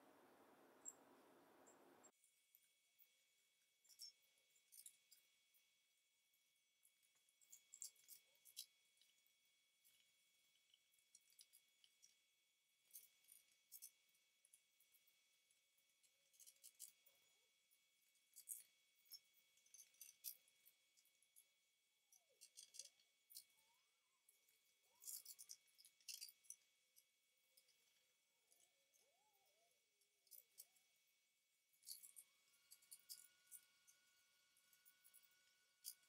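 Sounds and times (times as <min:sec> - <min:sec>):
faint light clicks and clinks: 0:03.6 - 0:05.8, 0:06.8 - 0:36.0.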